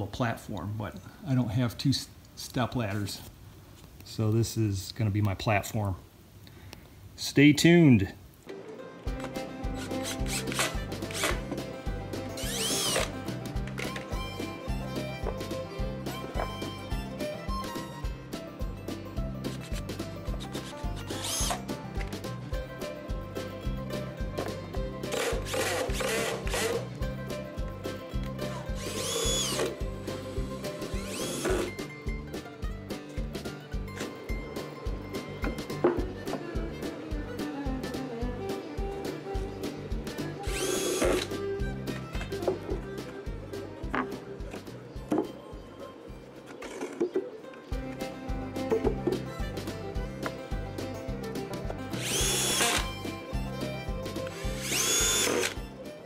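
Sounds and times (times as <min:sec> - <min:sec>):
background music with beat: 0:09.1 - 0:46.5, 0:47.7 - 0:56.0
cordless drill driving screws: 0:09.8 - 0:11.5, 0:12.4 - 0:13.2, 0:20.6 - 0:21.7, 0:25.1 - 0:26.9, 0:28.8 - 0:29.8, 0:30.8 - 0:31.8, 0:40.4 - 0:41.4, 0:52.0 - 0:52.9, 0:54.3 - 0:55.6.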